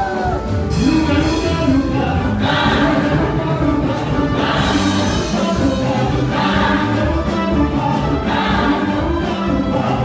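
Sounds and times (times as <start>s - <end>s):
band with drum kit and guitar: 0.0s - 10.0s
group of singers singing: 0.0s - 10.0s.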